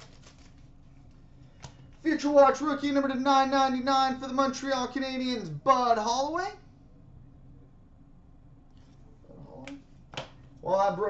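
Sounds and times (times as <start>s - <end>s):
trading cards snapping: 0.0s - 0.7s, 9.7s - 10.6s
man talking: 2.0s - 6.6s, 10.6s - 11.0s.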